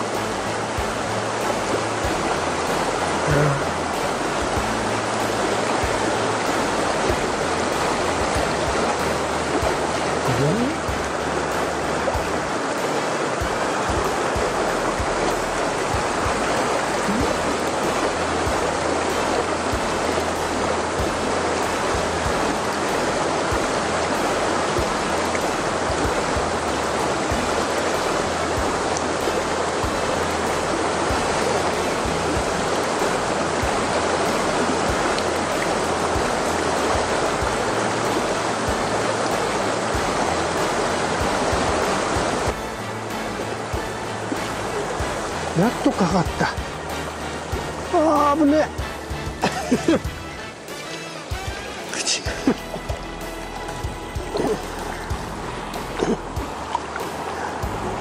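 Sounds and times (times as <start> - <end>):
river rushing over rocks: 0.0 - 58.0.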